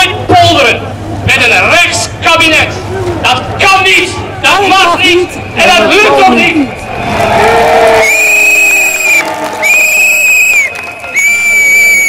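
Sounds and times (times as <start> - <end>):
whistle blasts: 8.0 - 12.0.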